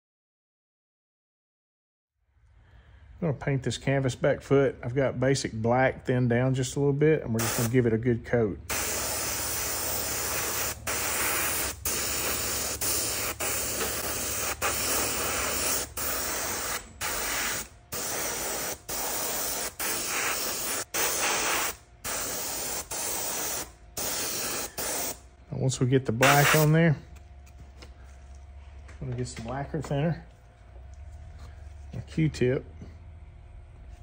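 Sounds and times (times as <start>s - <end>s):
airbrush spraying hiss: 7.4s - 7.8s, 8.7s - 25.2s, 26.2s - 26.7s.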